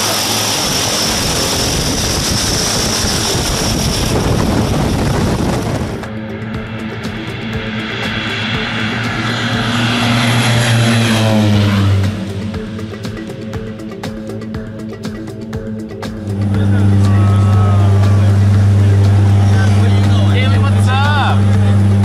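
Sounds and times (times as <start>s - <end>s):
propeller plane engine: 0.0s - 22.0s
propeller wash: 0.0s - 22.0s
background music: 0.4s - 22.0s.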